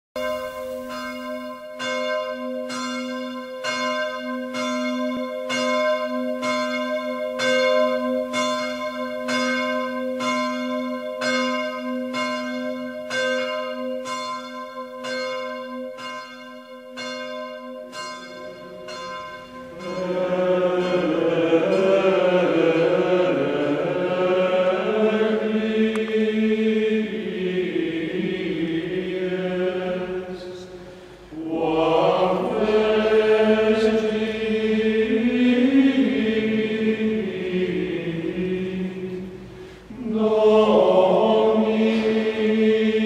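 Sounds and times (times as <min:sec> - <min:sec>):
bell struck ringing: 0:00.2 - 0:21.2
men's choir chanting in unison: 0:19.7 - 0:43.0.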